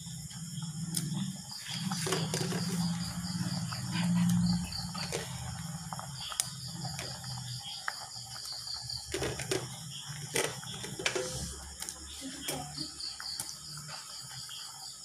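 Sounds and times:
insect chirping: 0.0s - 15.0s.

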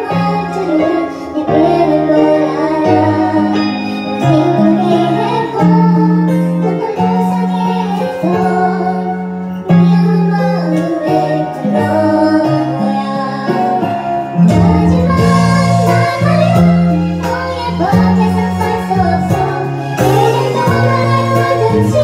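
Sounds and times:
music backing track with bass: 0.0s - 22.0s
woman singing: 0.0s - 22.0s.

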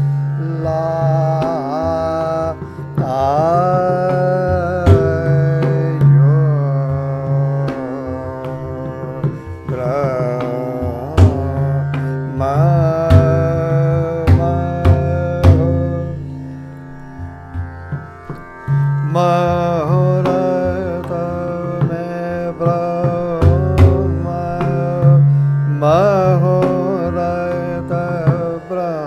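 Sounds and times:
man singing long notes: 0.0s - 16.5s, 19.0s - 29.0s
pakhawaj drum strokes: 0.0s - 29.0s
tanpura drone: 0.0s - 29.0s.

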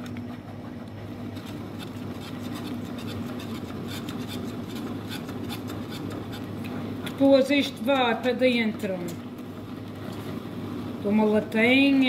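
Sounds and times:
steady low hum: 0.0s - 12.0s
spatula scraping a saucepan: 1.8s - 6.5s.

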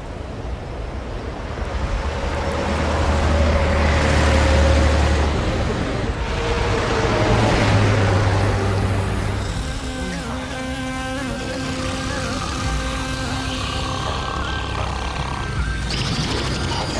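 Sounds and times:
bus engine drone: 0.0s - 16.9s.

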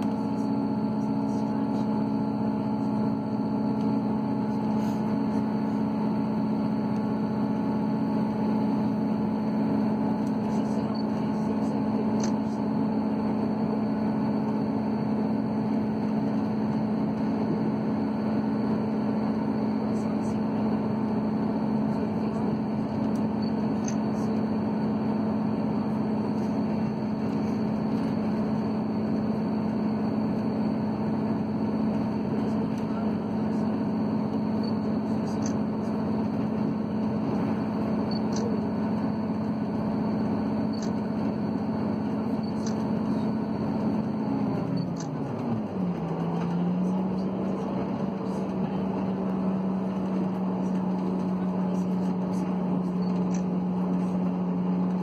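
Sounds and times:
train engine droning hum: 0.0s - 55.0s.

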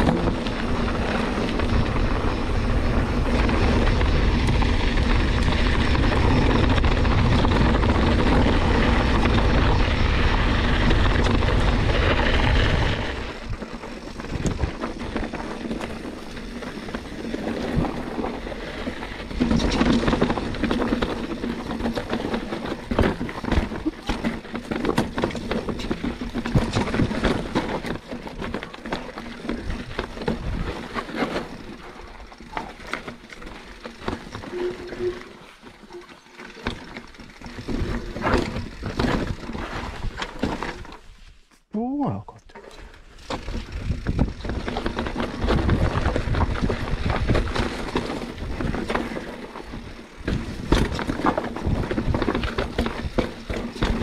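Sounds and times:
wind rumbling on microphone: 0.0s - 28.6s, 42.8s - 54.0s
bike knocks and rattles: 0.0s - 41.1s, 42.8s - 54.0s.

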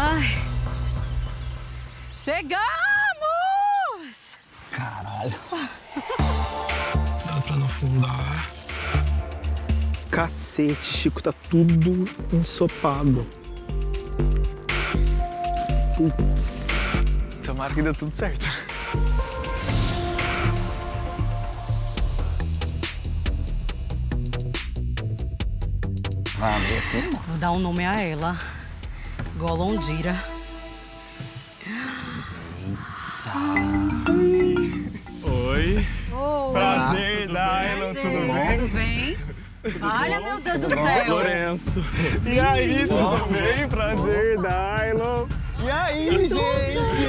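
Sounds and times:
music with pulsing bass: 33.6s - 37.0s, 40.5s - 47.0s.

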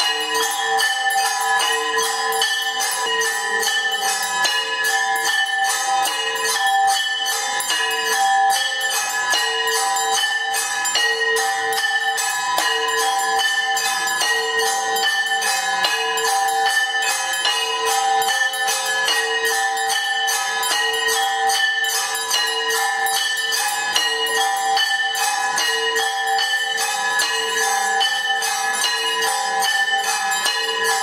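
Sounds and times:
temple bell ringing: 0.0s - 31.0s.

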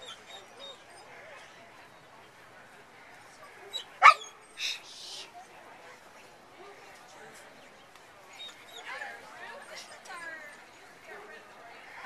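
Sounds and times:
dog barking: 4.0s - 4.3s.

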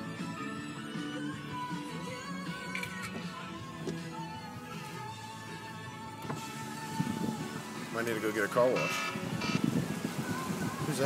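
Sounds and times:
music in car cabin: 0.0s - 11.0s
road noise: 0.0s - 11.0s.

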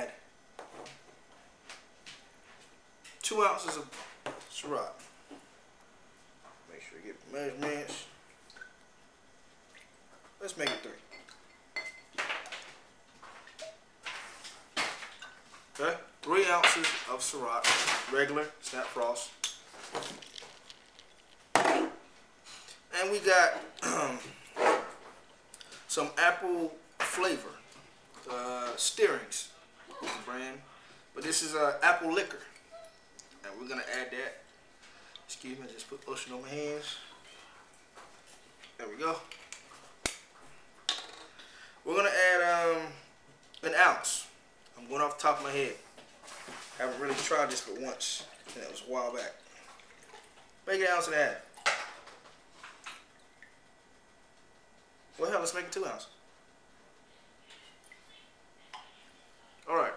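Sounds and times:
glass bottles clinking: 10.6s - 12.7s.

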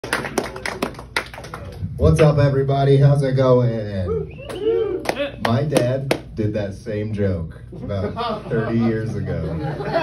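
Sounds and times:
audience applause: 0.0s - 1.7s.

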